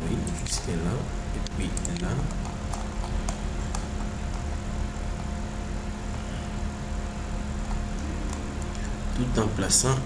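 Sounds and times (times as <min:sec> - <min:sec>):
low hum: 0:00.0 - 0:10.0
computer mouse clicks: 0:01.4 - 0:04.5.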